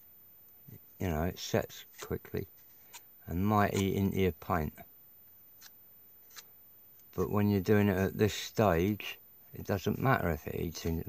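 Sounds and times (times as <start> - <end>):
knife scraping putty on plastic: 5.6 - 6.5.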